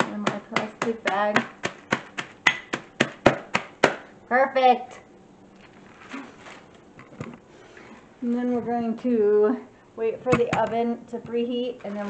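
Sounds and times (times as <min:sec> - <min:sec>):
meat mallet crushing walnuts: 0:00.0 - 0:04.1.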